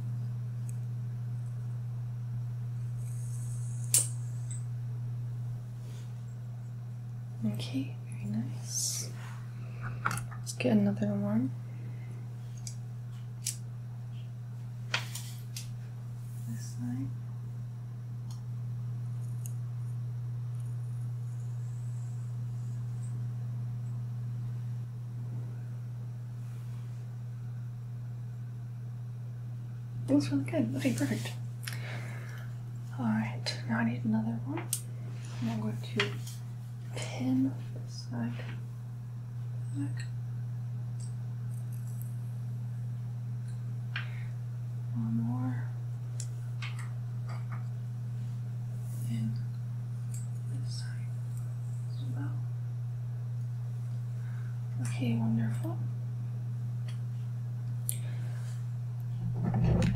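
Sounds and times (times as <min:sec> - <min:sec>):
low hum: 0:00.0 - 0:59.9
hair clip clicking and scratching: 0:03.6 - 0:04.6
hair clip snapping shut: 0:03.9 - 0:04.2.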